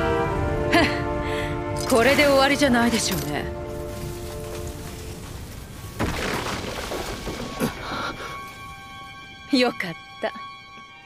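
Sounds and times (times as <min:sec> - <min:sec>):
held music chord: 0:00.0 - 0:05.5
crackle of rubble and fires: 0:01.7 - 0:08.7.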